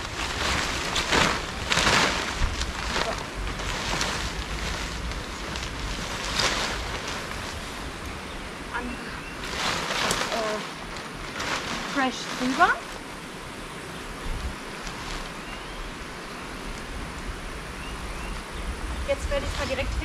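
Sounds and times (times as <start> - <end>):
tent fabric rustling and swishing: 0.0 - 13.5, 14.2 - 17.2, 18.2 - 20.0
low wind rumble on microphone: 0.0 - 20.0.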